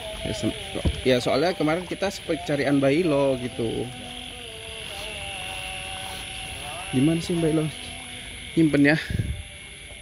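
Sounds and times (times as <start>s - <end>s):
night insects droning: 0.0s - 10.0s.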